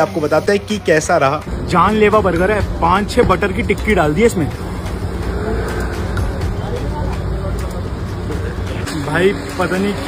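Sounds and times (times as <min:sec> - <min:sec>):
faint voices: 0:00.0 - 0:10.0
rumble of passing vehicles: 0:00.0 - 0:10.0.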